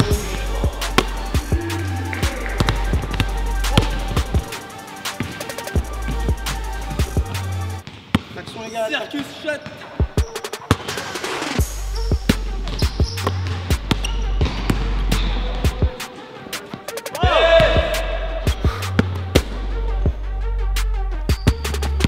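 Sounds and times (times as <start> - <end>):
music with deep bass beat: 0.0 - 7.8, 11.5 - 16.1, 17.2 - 22.0
basketball bouncing on hardwood: 2.2 - 4.5.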